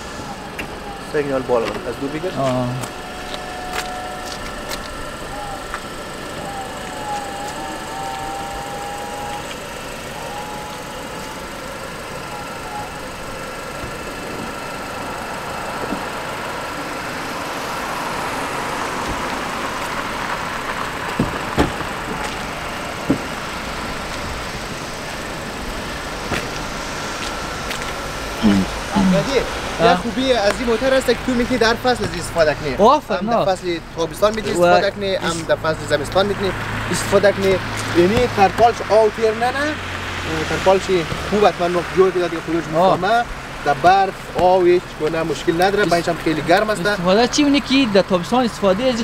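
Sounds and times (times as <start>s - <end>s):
motor whine: 0.0s - 32.8s.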